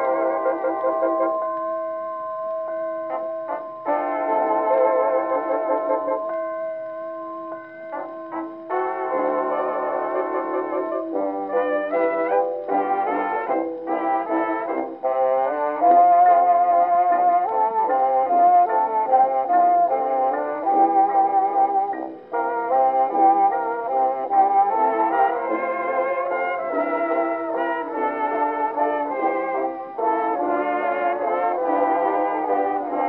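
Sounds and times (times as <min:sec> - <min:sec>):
dance orchestra waltz on a record: 0:00.0 - 0:33.0.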